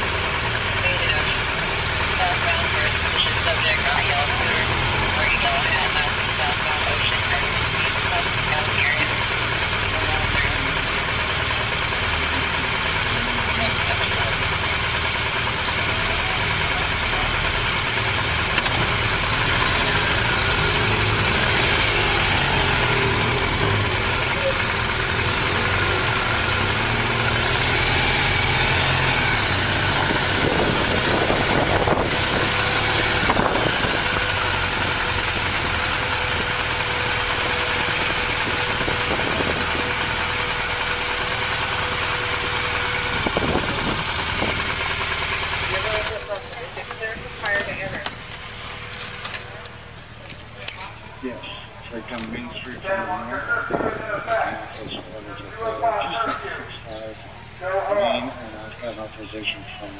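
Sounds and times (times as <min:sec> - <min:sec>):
motorcycle engine running: 0:00.0 - 0:59.9
road noise: 0:00.0 - 0:59.9.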